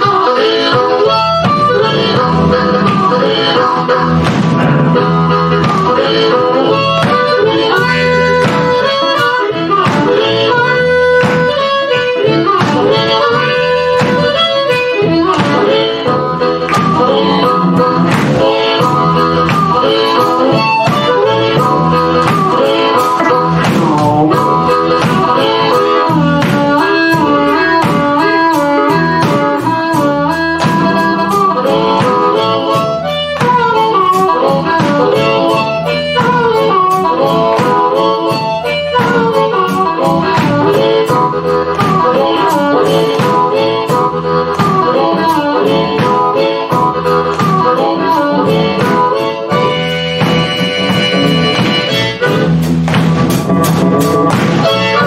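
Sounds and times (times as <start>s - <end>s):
electric bass: 0.0s - 55.0s
harmonica melody: 0.0s - 55.0s
keyboard: 0.0s - 55.0s
steady drum beat: 0.0s - 55.0s.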